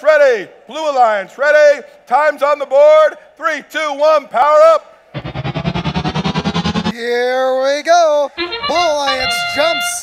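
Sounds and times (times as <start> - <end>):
pulsing electronic tone rising in pitch: 5.1 - 7.0.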